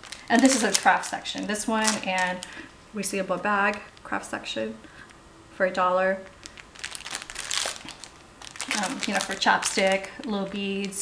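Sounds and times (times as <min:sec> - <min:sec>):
plastic packaging crinkling: 0:00.0 - 0:04.6, 0:06.2 - 0:11.0.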